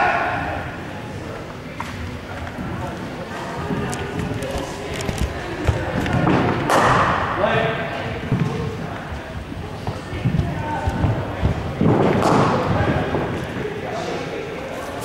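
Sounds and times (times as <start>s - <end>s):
echoing voices: 0.0s - 15.0s.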